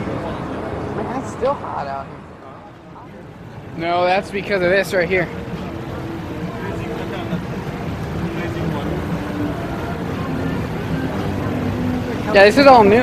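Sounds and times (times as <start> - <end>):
distant voices of passers-by: 0.0 - 13.0
traffic hum: 0.0 - 13.0.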